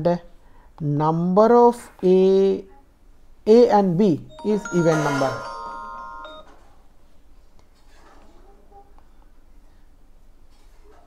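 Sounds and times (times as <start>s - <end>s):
chime ringing tones: 4.3s - 6.7s.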